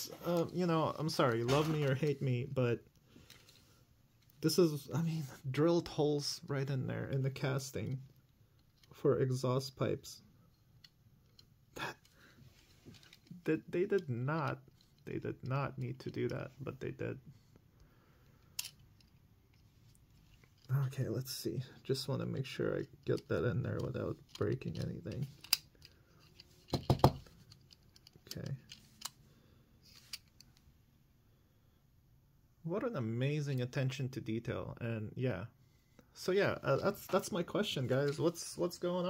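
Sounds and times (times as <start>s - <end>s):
light clicks of toy car handled: 18.4s - 20.7s, 22.8s - 29.2s.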